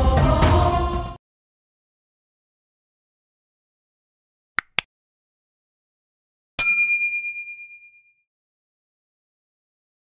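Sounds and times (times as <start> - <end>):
bright metallic chime: 6.6 - 8.1.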